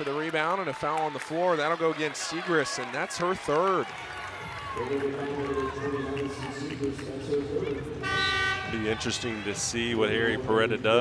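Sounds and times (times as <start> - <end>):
arena horn buzz: 8.0 - 9.7.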